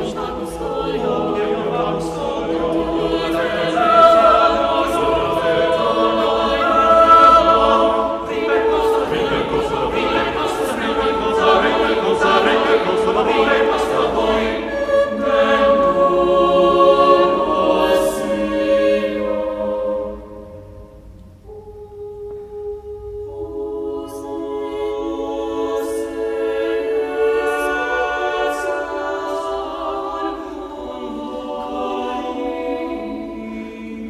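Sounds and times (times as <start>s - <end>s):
vocal ensemble singing: 0.0s - 34.0s.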